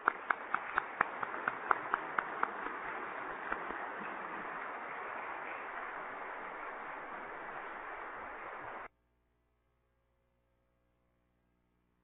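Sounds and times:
audience applauding: 0.0s - 8.9s.

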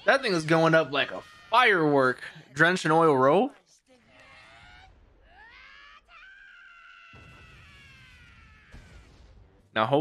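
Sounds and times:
person screaming: 5.4s - 9.0s.

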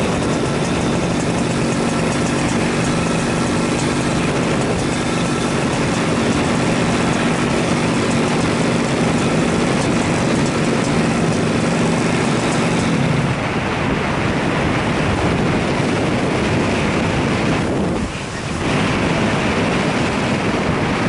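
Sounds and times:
paramotor engine droning: 0.0s - 21.0s.

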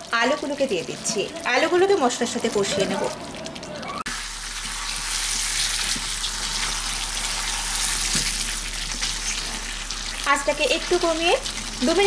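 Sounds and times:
potatoes sizzling in oil: 4.1s - 12.0s.

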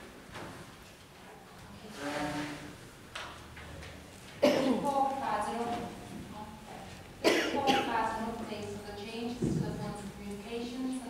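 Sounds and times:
person coughing: 4.4s - 4.8s, 7.2s - 8.0s.

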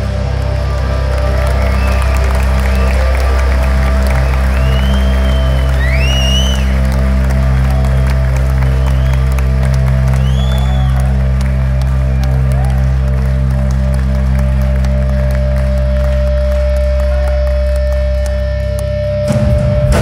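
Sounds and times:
crowd cheering: 0.0s - 18.6s
rock band drone: 0.0s - 20.0s
whistle: 4.2s - 6.8s, 8.8s - 9.3s, 10.1s - 11.0s.

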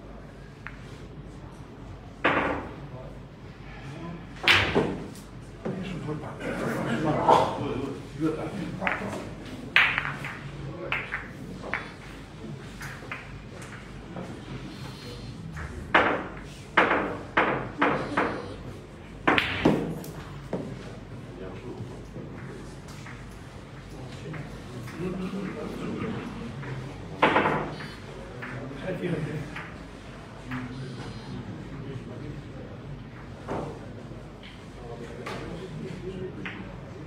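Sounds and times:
low voices murmuring: 5.0s - 19.2s, 20.1s - 37.0s
billiard balls clicking: 9.8s - 12.1s.

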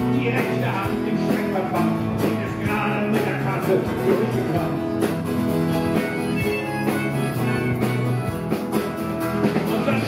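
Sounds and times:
bass guitar: 0.0s - 10.0s
guitars playing chords: 0.0s - 10.0s.

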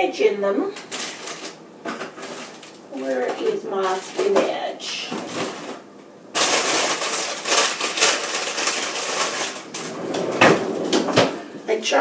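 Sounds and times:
plastic bags crinkling and rattling: 0.7s - 10.0s.

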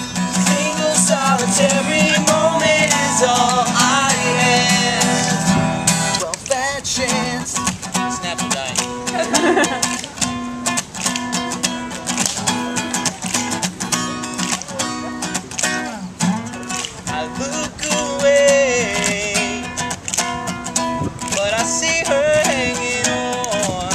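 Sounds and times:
acoustic guitar strumming: 0.0s - 23.9s.

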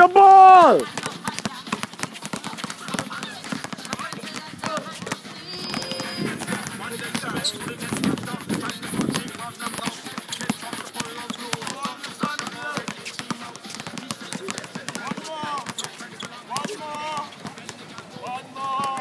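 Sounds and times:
basketballs bouncing on court: 0.2s - 19.0s
children calling out: 5.3s - 6.4s.

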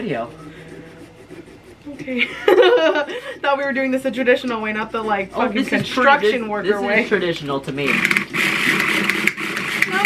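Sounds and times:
electric carving tool buzzing: 7.9s - 10.0s.

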